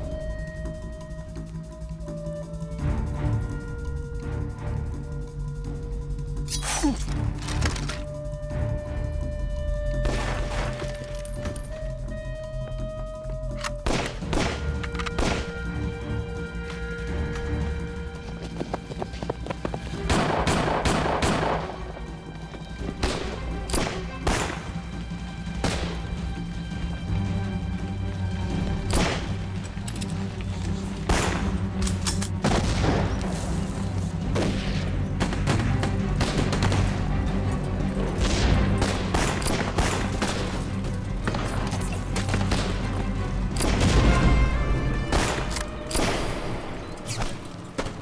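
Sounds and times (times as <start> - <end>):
film score music: 0.0 - 48.0.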